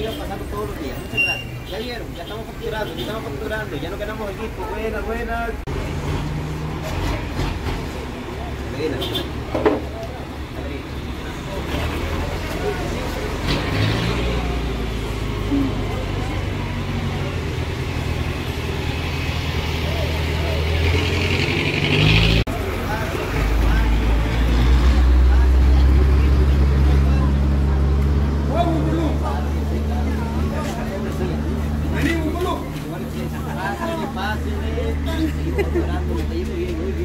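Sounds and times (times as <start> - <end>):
vehicle engines rumbling: 0.0 - 37.0.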